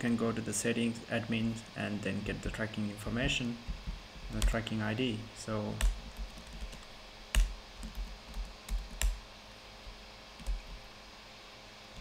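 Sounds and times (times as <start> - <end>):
computer keyboard keystrokes: 5.8 - 9.2, 10.4 - 10.8.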